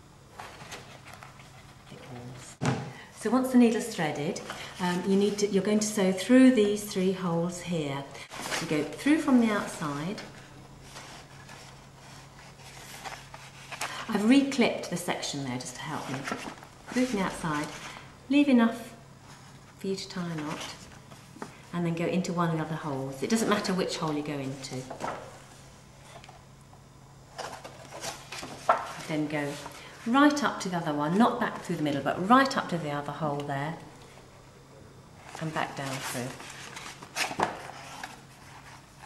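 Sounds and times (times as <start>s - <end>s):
steady low hum: 0.0s - 39.0s
paper and thread rustling: 35.2s - 39.0s.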